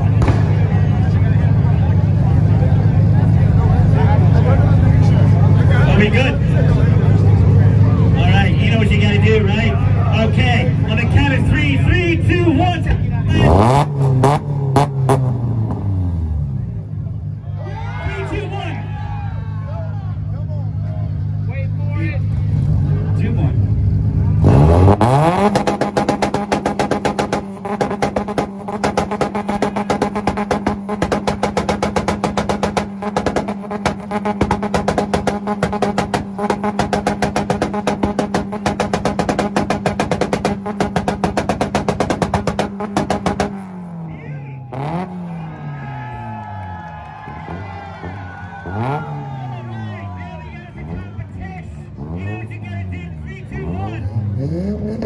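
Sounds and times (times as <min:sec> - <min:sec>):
car engine revving: 0:00.0 - 0:17.5, 0:20.2 - 0:55.0.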